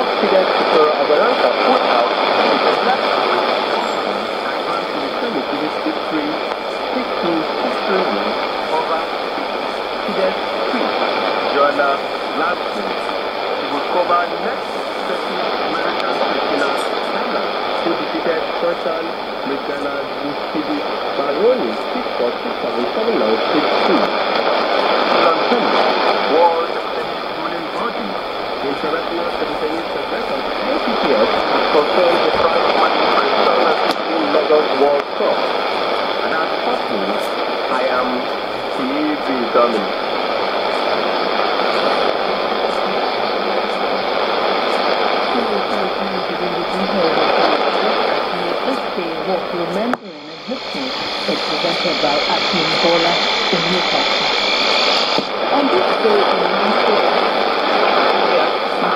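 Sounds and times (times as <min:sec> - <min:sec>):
man's voice on shortwave radio: 0:00.0 - 0:24.2, 0:25.0 - 0:35.6, 0:36.2 - 0:58.9
radio static hiss: 0:00.0 - 0:58.9.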